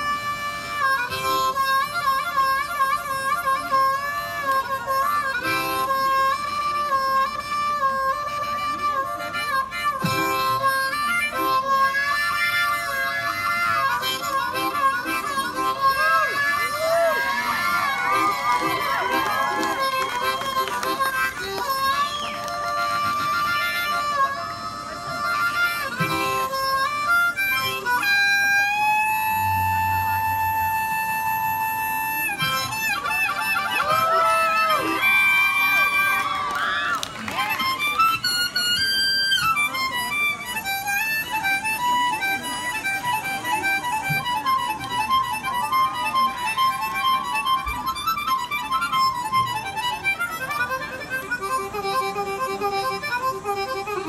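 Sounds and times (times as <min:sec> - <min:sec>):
harmonica melody: 0:00.0 - 0:54.0.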